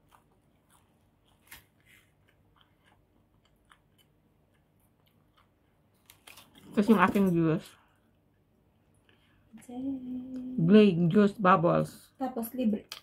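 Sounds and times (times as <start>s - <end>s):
chewing with mouth clicks: 0.0s - 6.5s.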